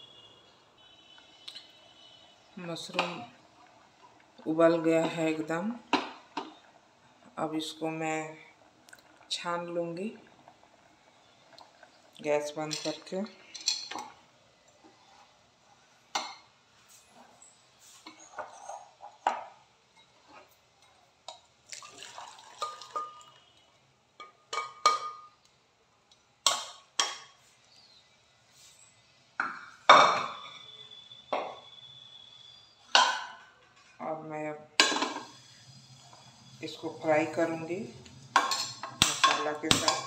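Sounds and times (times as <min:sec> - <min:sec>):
steel pots and utensils clanking: 0:11.5 - 0:14.2, 0:17.9 - 0:23.5, 0:24.2 - 0:25.4, 0:29.4 - 0:31.7, 0:32.9 - 0:33.9, 0:34.8 - 0:40.0
water pouring: 0:21.6 - 0:23.6.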